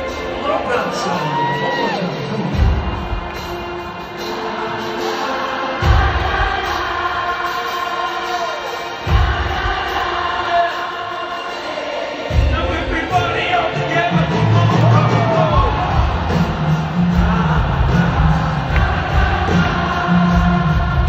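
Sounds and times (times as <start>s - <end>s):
crowd singing in unison: 0.0s - 21.0s
live rock band: 0.0s - 21.0s.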